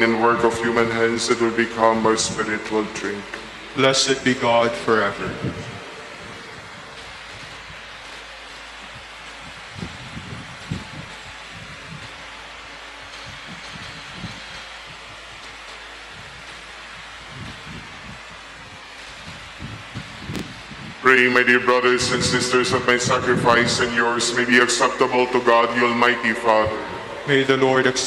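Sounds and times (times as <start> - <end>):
church room tone hiss: 0.0 - 9.6, 20.5 - 28.0.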